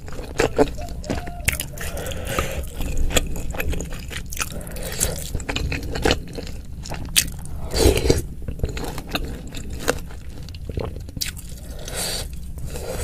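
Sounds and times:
chewing and crunching food: 0.0 - 13.0.

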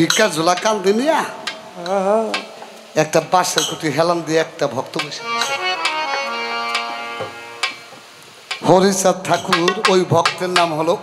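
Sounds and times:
faint steady hiss: 0.0 - 11.0
man singing with vibrato: 1.8 - 2.6.

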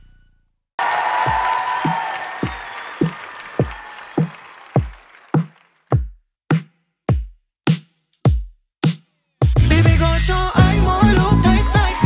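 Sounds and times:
deep electronic kick drum: 7.1 - 7.4, 8.3 - 8.6, 10.6 - 12.0.

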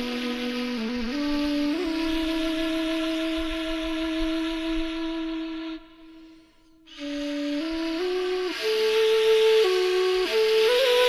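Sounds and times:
flute holding long note: 0.0 - 11.0.

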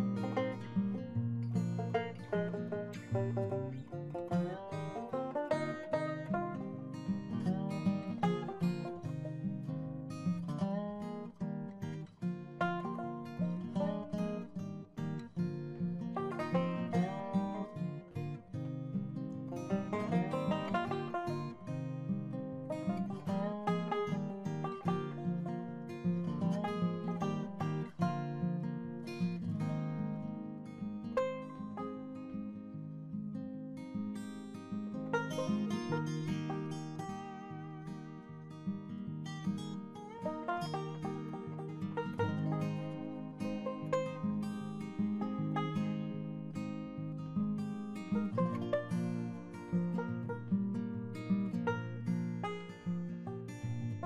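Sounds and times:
acoustic guitar plucked notes: 0.0 - 54.0.

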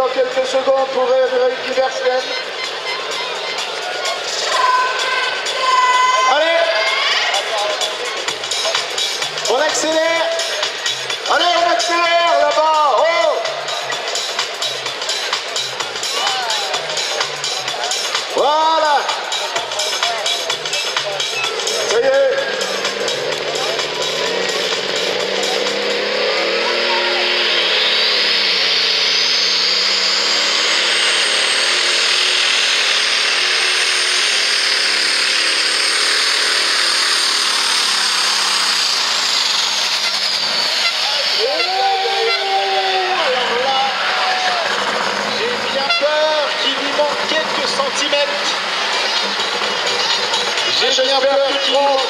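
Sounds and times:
high turbo whistle: 4.4 - 7.3, 25.4 - 44.9
diesel tractor engine revving: 6.2 - 52.0.

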